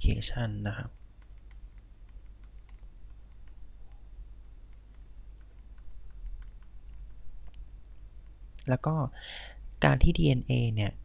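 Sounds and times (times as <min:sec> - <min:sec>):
low steady hum: 0:00.0 - 0:11.0
stylus tapping on a tablet: 0:00.9 - 0:07.6.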